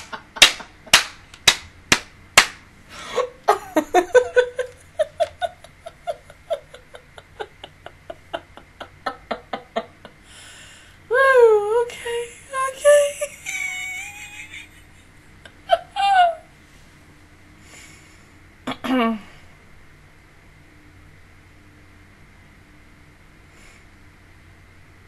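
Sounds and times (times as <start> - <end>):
woman laughing hard: 3.0 - 10.4, 11.4 - 16.5.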